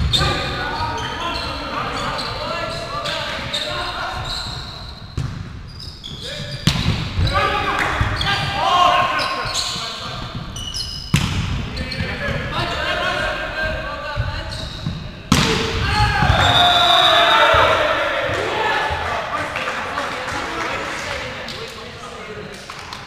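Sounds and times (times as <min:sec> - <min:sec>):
players shouting: 0:07.2 - 0:09.6, 0:15.4 - 0:21.3
volleyball being struck: 0:11.1 - 0:11.6, 0:15.3 - 0:16.5.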